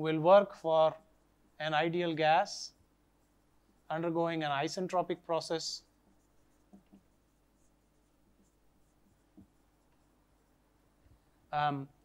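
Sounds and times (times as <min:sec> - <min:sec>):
marker squeaking on whiteboard: 0:05.8 - 0:10.5.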